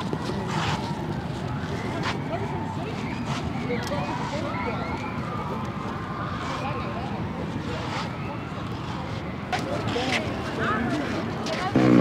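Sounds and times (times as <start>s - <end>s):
people talking: 0.0s - 12.0s
loud buzzy fart noise: 11.7s - 12.0s.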